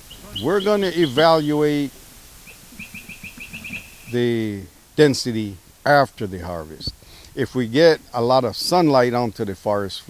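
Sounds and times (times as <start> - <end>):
bird chirping: 0.0 - 4.2.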